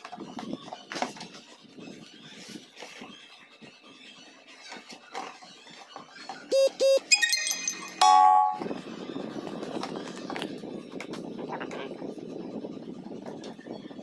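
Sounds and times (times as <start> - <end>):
long loud tone: 6.5 - 8.8
warbling high tone: 6.5 - 8.8.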